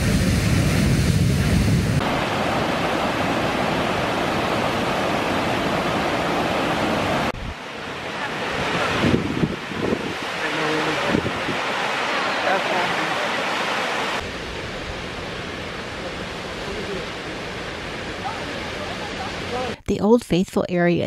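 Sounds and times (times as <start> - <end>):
wind on microphone: 0.0 - 12.2
waterfall rushing: 0.0 - 19.8.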